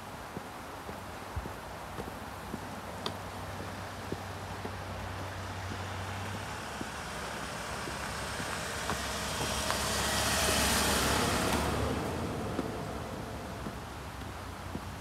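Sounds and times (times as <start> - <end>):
minivan driving past: 5.3 - 14.1.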